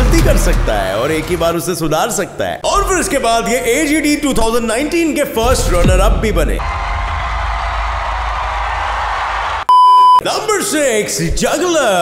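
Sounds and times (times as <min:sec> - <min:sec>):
audience cheering and applauding: 0:06.6 - 0:09.7.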